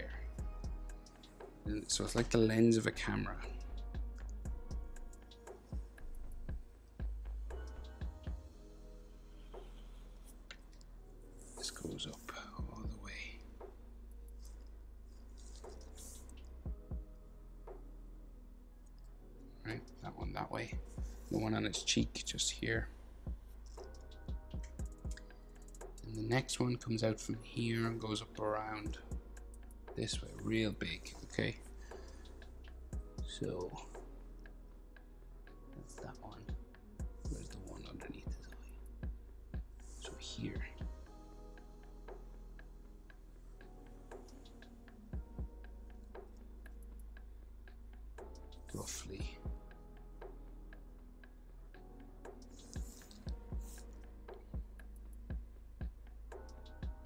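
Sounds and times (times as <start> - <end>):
faint background music: 0.0 - 57.0.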